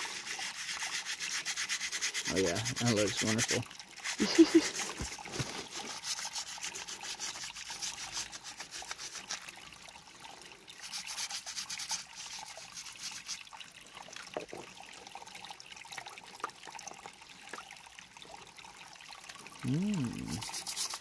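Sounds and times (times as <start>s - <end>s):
toothbrush scrubbing crystal: 0.0s - 9.4s, 10.8s - 13.4s, 20.0s - 21.0s
creek water trickling: 0.0s - 21.0s.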